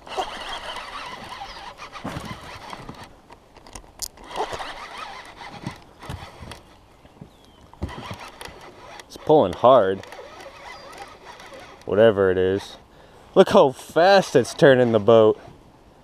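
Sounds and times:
fishing reel whirring: 0.0s - 3.1s, 3.7s - 6.7s, 7.8s - 12.8s
reel clicks: 0.0s - 6.7s, 7.4s - 12.8s
brief squeaks: 10.0s - 11.8s.

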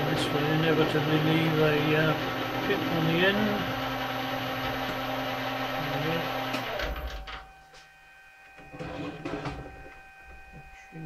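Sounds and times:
metal lathe cutting brass: 0.0s - 7.0s.

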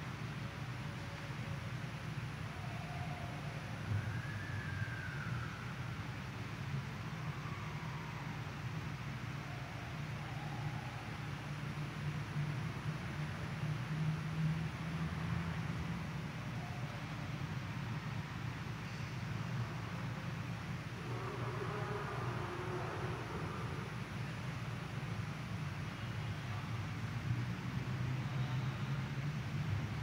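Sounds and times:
low hum and hiss: 0.0s - 30.0s.

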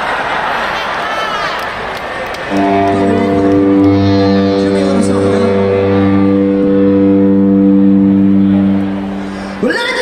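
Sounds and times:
amplified instrument sustained low note: 2.5s - 9.6s.

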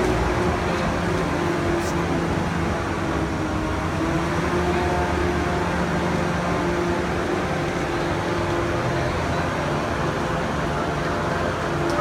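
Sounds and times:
constant noisy rush: 0.0s - 12.0s.

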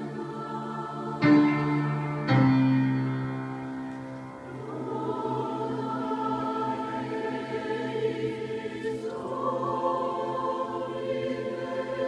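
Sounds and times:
choir singing sustained chords: 0.0s - 12.0s
piano accompaniment: 0.8s - 7.0s.

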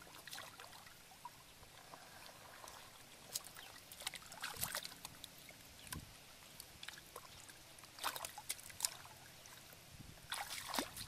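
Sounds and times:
hands splashing in muddy water: 10.3s - 11.0s.

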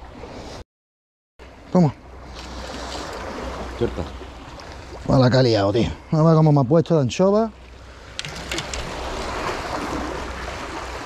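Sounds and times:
sea water surging on concrete: 2.2s - 5.6s, 7.6s - 11.0s.

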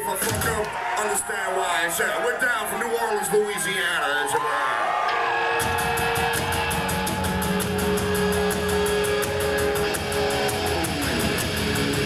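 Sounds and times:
live heavy metal band: 5.5s - 12.0s.

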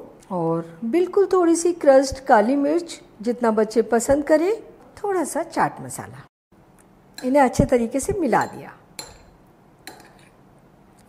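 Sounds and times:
metal spoon clinking glass bowl: 8.3s - 10.4s.

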